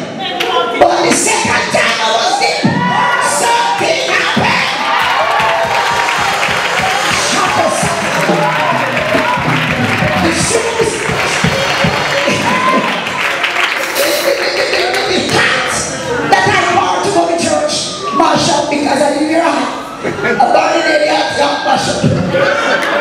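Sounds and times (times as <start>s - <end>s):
crowd cheering: 2.1s - 18.6s, 22.0s - 23.0s
people clapping: 3.4s - 15.8s, 22.6s - 23.0s.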